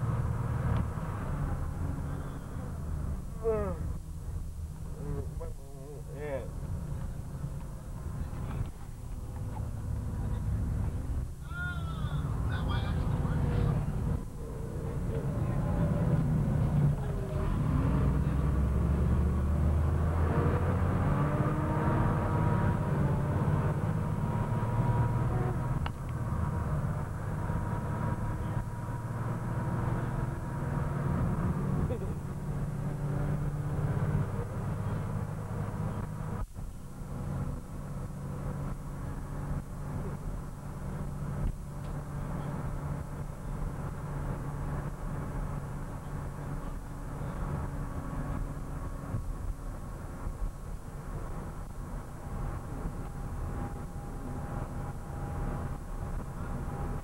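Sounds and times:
bus engine and road noise: 0:00.0 - 0:57.0
passengers talking: 0:04.9 - 0:18.7.

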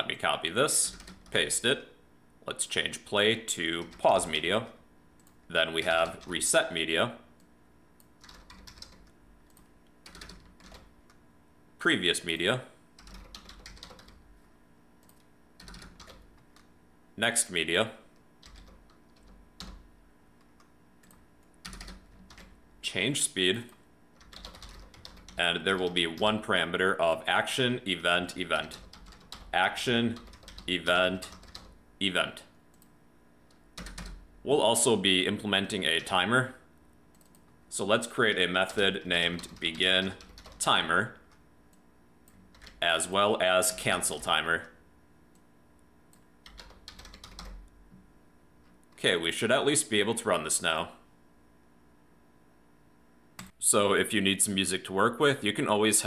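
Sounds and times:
keyboard typing: 0:00.9 - 0:01.4, 0:08.0 - 0:11.2, 0:13.0 - 0:14.2, 0:15.0 - 0:16.7, 0:18.4 - 0:19.8, 0:20.4 - 0:22.6, 0:24.2 - 0:26.3, 0:28.6 - 0:29.5, 0:30.1 - 0:31.8, 0:33.5 - 0:34.2, 0:37.1 - 0:37.5, 0:39.4 - 0:40.6, 0:42.2 - 0:42.8, 0:46.1 - 0:47.8
keyboard keys clicking: 0:08.2 - 0:10.8, 0:13.0 - 0:14.2, 0:24.2 - 0:25.4, 0:46.4 - 0:47.6.

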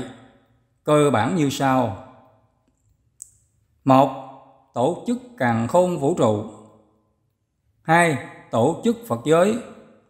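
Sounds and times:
man narrating: 0:00.0 - 0:00.2, 0:00.8 - 0:02.1, 0:03.8 - 0:06.6, 0:07.8 - 0:09.8.

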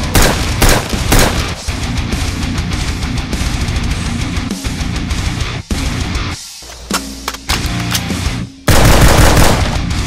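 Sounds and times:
rapid gunfire: 0:00.0 - 0:01.7, 0:08.7 - 0:10.0
music: 0:00.0 - 0:10.0.

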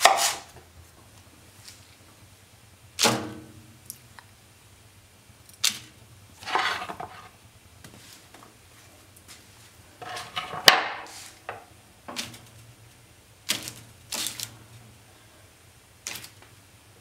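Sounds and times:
rustle of handling food: 0:05.6 - 0:11.5.

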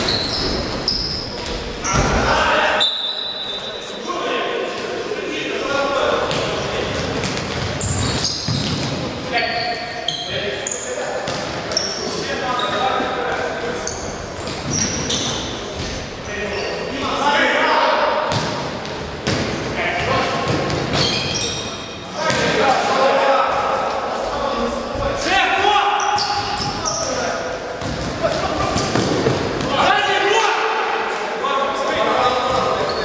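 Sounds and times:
shoe squeaks: 0:00.0 - 0:02.0, 0:02.8 - 0:04.1, 0:07.8 - 0:08.8, 0:09.4 - 0:11.0, 0:11.7 - 0:13.0, 0:13.8 - 0:16.9, 0:20.9 - 0:22.0, 0:26.0 - 0:27.4, 0:32.4 - 0:33.0.

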